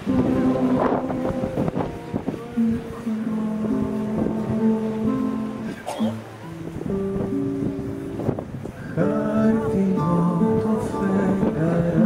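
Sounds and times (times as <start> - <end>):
live ensemble music: 0.0 - 12.0
wind buffeting microphone: 0.0 - 12.0.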